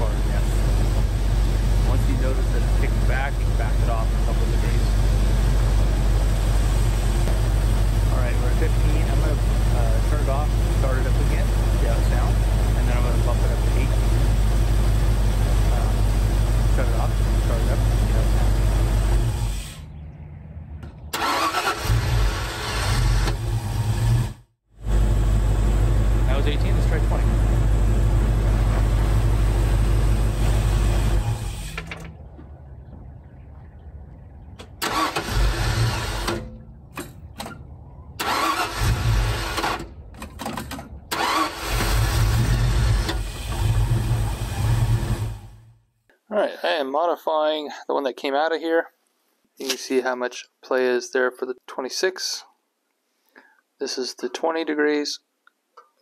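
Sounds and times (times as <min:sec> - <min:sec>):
car engine running: 0:00.0 - 0:19.8, 0:20.6 - 0:33.5, 0:41.0 - 0:45.7
engine starting: 0:21.1 - 0:24.4, 0:34.8 - 0:37.6, 0:38.2 - 0:45.7.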